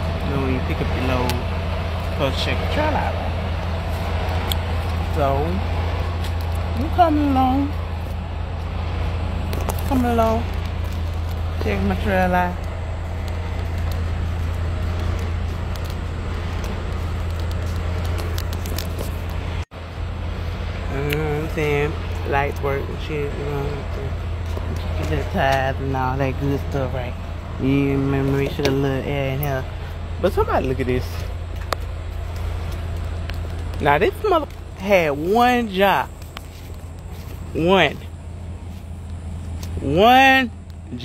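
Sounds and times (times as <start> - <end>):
diesel truck engine idling: 0.0 - 41.0
yard noise: 0.0 - 41.0.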